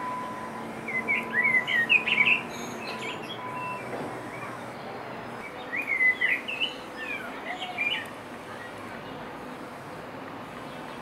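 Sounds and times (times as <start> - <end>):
outdoor background hiss: 0.0 - 11.0
songbird chirping and warbling: 0.2 - 8.2.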